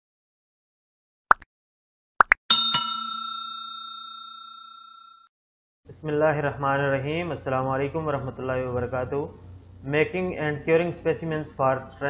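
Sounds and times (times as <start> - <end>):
bell chime ringing: 2.5 - 5.3.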